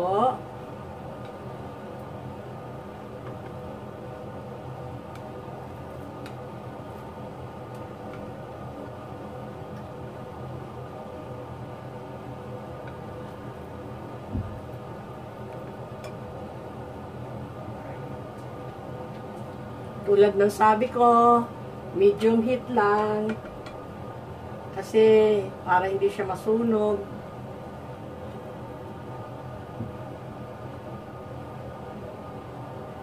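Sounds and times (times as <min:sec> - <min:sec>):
steady hum: 0:00.0 - 0:33.0.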